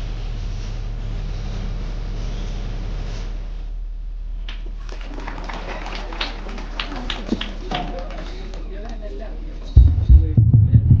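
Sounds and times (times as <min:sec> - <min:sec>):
steady low hum: 0:00.0 - 0:04.8, 0:09.8 - 0:11.0.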